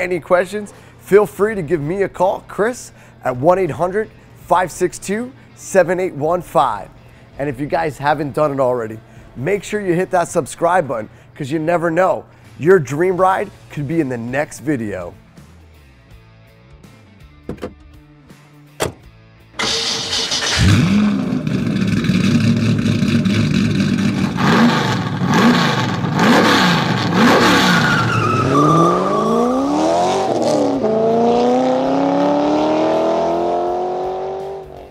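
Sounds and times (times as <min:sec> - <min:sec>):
car engine revving and accelerating: 0:19.6 - 0:34.9.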